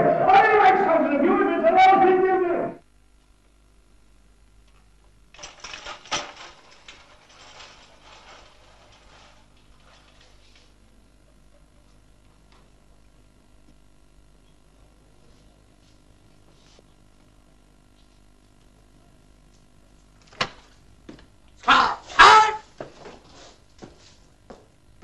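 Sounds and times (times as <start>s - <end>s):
man's voice: 0.0s - 2.8s
light clattering and rattling: 5.4s - 10.9s.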